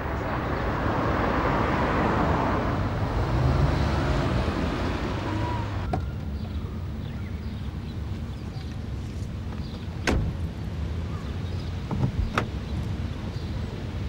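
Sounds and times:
vehicle rumble: 0:00.0 - 0:14.0.

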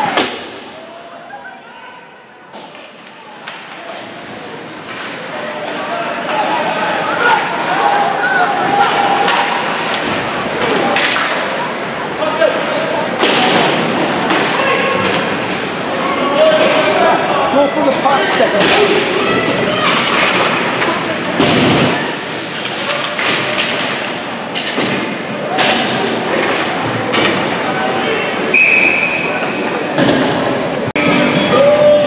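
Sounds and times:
puck and sticks hitting boards: 0:02.5 - 0:04.1, 0:08.6 - 0:11.6, 0:13.2 - 0:15.6, 0:17.9 - 0:27.7, 0:30.0 - 0:31.2
voices shouting: 0:05.4 - 0:10.0, 0:14.3 - 0:21.2
referee's whistle: 0:28.5 - 0:29.4.

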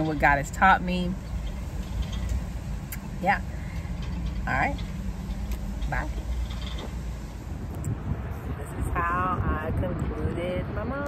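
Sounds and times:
car cabin hum: 0:00.0 - 0:11.0
wind noise on microphone: 0:00.0 - 0:11.0.

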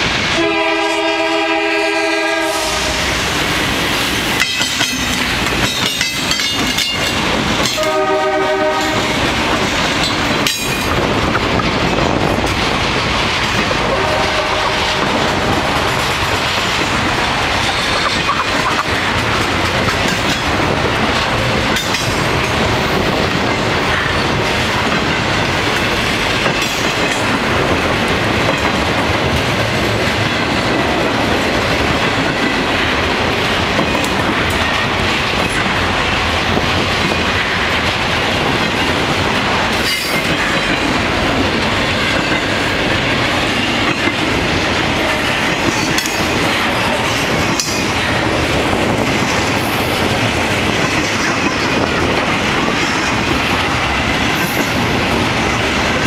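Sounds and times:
train clanks: 0:00.0 - 0:56.0
train wheels on rail: 0:00.0 - 0:56.0.

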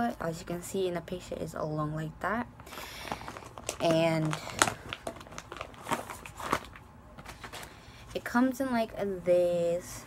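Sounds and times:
plastic packaging crackling: 0:02.6 - 0:07.8.

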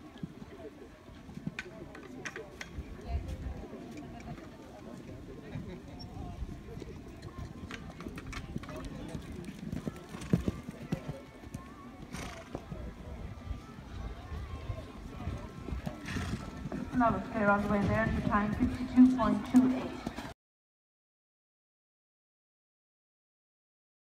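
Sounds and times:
faint voices: 0:00.0 - 0:20.3
horse hoofbeats on sand: 0:07.2 - 0:12.7, 0:15.5 - 0:20.3.

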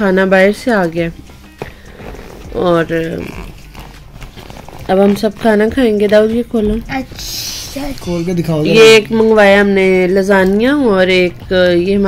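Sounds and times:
woman speaking: 0:00.0 - 0:01.2, 0:02.5 - 0:03.5, 0:04.8 - 0:06.8, 0:08.7 - 0:12.0.

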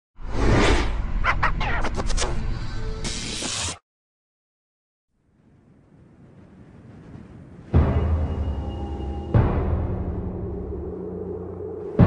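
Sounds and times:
deep low rumble: 0:05.4 - 0:12.0
intro music: 0:07.8 - 0:12.0.

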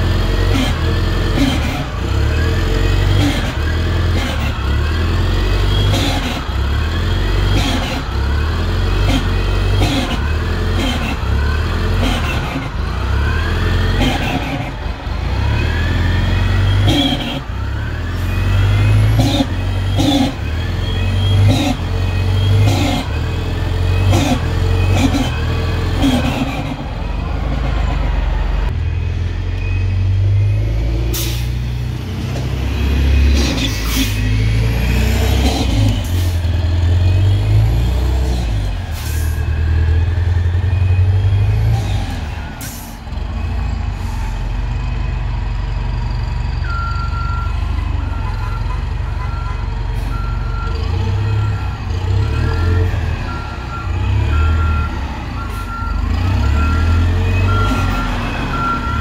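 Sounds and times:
bus engine rumbling: 0:00.0 - 0:59.0.

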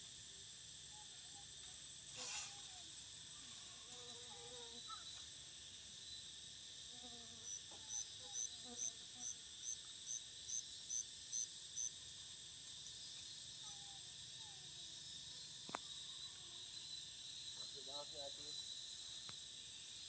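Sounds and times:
insect chorus buzzing: 0:00.0 - 0:20.0.

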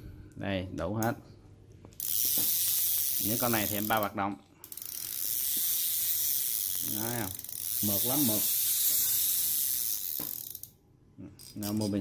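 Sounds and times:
fishing reel click: 0:02.0 - 0:10.8
fishing reel rotor whirring: 0:02.0 - 0:10.8.

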